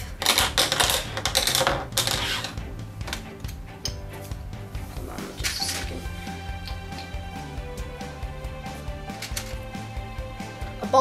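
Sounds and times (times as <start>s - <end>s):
plastic pieces clattering: 0.0s - 2.6s, 9.2s - 9.6s
background music: 0.0s - 11.0s.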